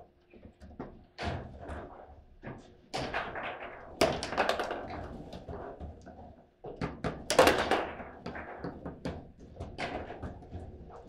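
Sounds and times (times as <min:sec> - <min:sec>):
foosball ball knocks and clacks: 0:00.4 - 0:11.0.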